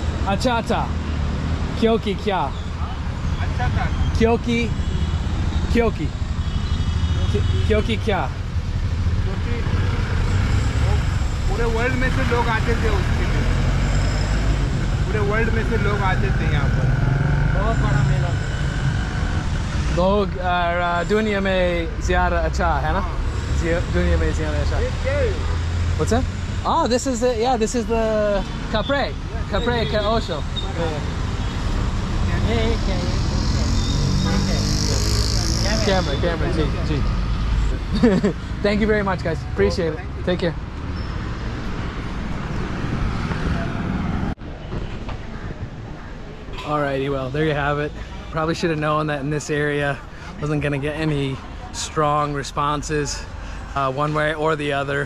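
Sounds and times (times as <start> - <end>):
passing vehicles hum: 0.0 - 55.0
quiet street noise: 0.0 - 55.0.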